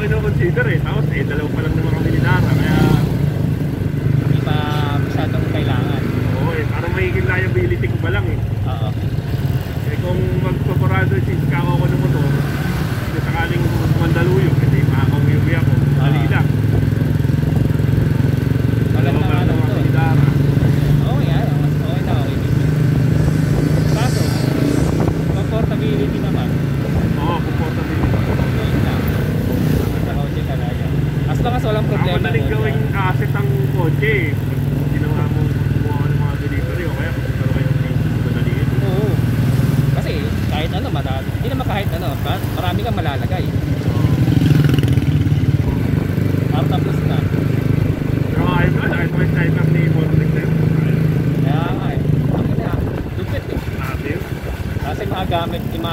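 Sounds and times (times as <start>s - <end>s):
motorcycle engines droning: 0.0s - 55.9s.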